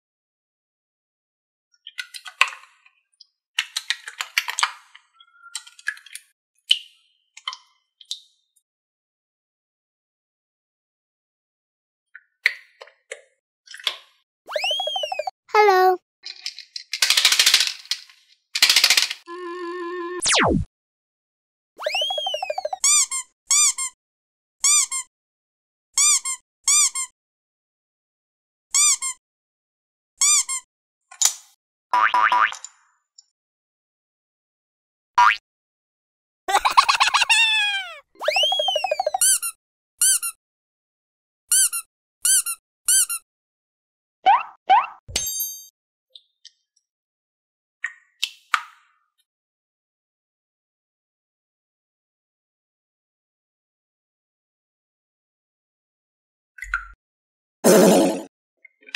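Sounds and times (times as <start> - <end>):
cartoon falling whistle: 14.5 - 16.0, 21.8 - 22.8, 37.3 - 39.3
plastic clapper toy clattering: 16.3 - 19.2.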